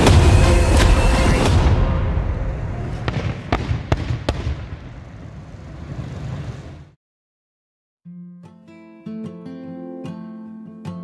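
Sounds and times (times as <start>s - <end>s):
sharp firework pops: 3.1s - 4.8s.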